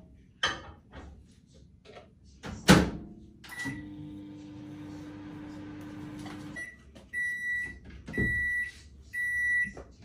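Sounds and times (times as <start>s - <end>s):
microwave oven humming: 3.5s - 6.7s.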